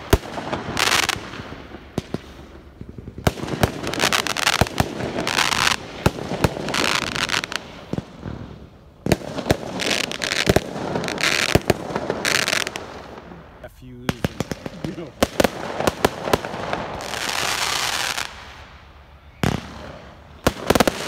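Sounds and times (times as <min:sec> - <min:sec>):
firework bangs and pops: 0:00.0 - 0:13.4, 0:14.0 - 0:21.0
fireworks hissing: 0:00.0 - 0:21.0.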